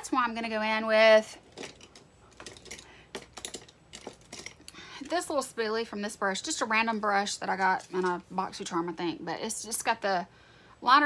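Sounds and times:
makeup items clicking and clattering: 1.4s - 4.8s.

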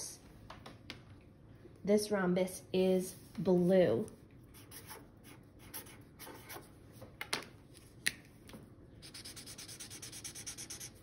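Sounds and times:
marker scratching on paper: 4.5s - 6.7s, 9.0s - 11.0s
marker scribbling on paper: 4.6s - 6.7s, 9.0s - 11.0s.

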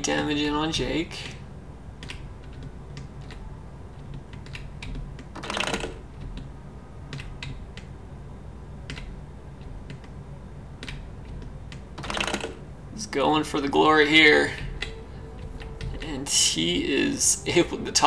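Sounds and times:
low steady hum: 0.0s - 18.0s
computer keys clicking: 0.1s - 1.4s, 2.0s - 6.5s, 7.1s - 8.0s, 8.8s - 10.2s, 10.8s - 12.6s, 14.5s - 16.3s.

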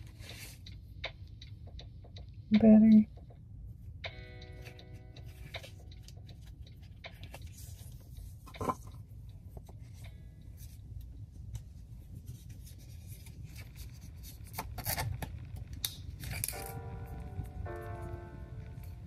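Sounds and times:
paper wrapping rustling: 4.7s - 8.8s, 12.0s - 17.1s
soft music notes: 16.5s - 19.0s.

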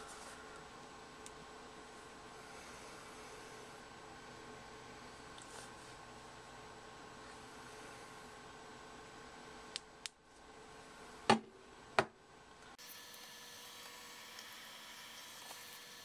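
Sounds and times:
room hiss and hum: 0.0s - 16.0s.

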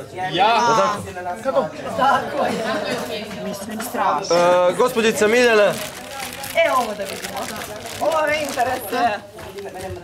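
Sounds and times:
overlapping background chatter: 0.0s - 10.0s.

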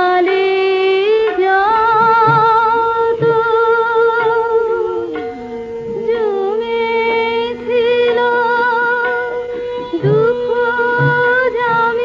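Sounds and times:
high voice singing with vibrato: 0.0s - 12.0s
instrumental accompaniment: 0.0s - 12.0s.

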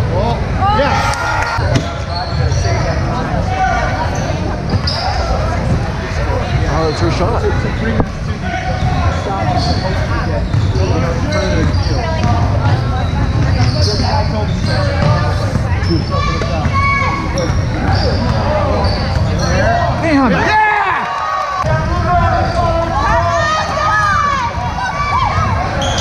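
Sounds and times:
people talking and calling out: 0.0s - 26.0s
sneakers squeaking: 1.6s - 20.4s, 22.2s - 26.0s.

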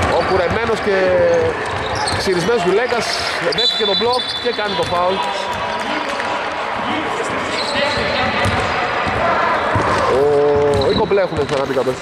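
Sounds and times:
players' voices: 0.0s - 12.0s
basketball bouncing on hardwood: 8.0s - 10.0s, 10.6s - 11.6s.

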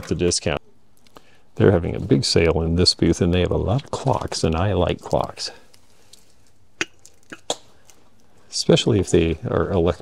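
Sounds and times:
faint room background: 0.0s - 10.0s.

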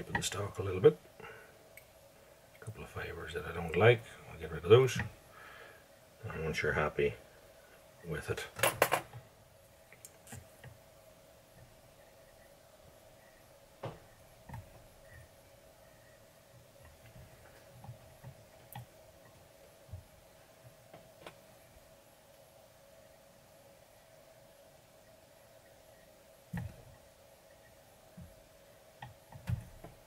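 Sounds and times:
steady faint hum: 0.0s - 30.0s.

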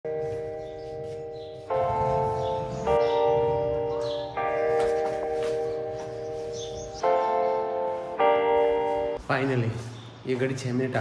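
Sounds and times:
bell-like chimes ringing: 0.0s - 9.2s.

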